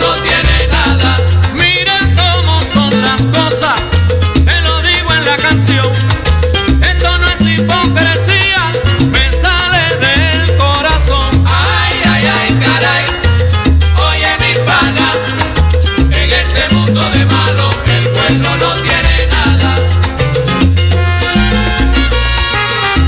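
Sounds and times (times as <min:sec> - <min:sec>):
salsa music: 0:00.0 - 0:23.0.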